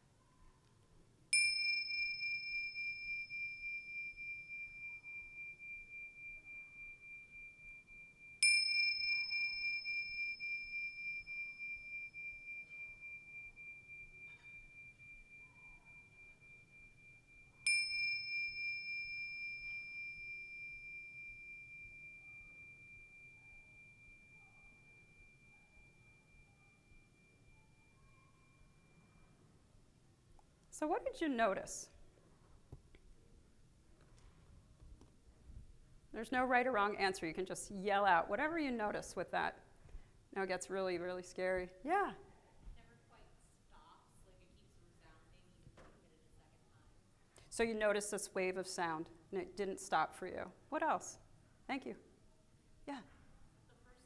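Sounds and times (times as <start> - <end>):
handheld bells ringing: 1.3 - 29.5.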